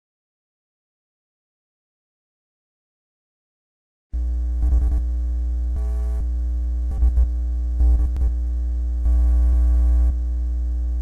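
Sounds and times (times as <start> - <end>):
deep electrical mains hum: 4.2 - 11.0
static crackles: 4.2 - 11.0.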